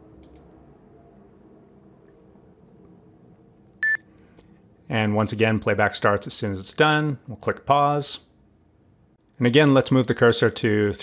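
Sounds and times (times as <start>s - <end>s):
low computer-room hum: 0.0s - 11.0s
short high-pitched beep: 3.8s - 4.0s.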